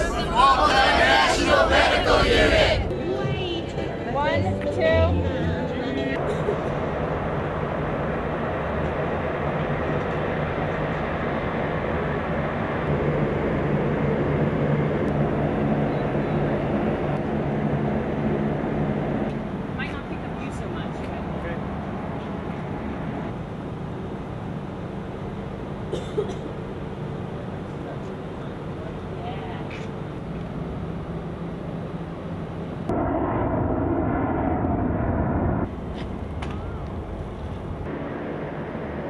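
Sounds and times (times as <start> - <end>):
mechanical rumble with low hum: 0.0 - 39.0.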